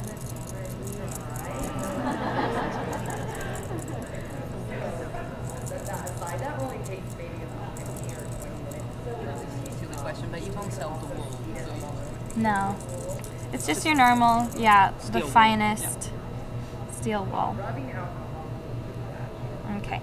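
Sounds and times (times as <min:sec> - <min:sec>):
steel wool scratching metal: 0:00.0 - 0:16.0
steady low hum: 0:00.0 - 0:20.0.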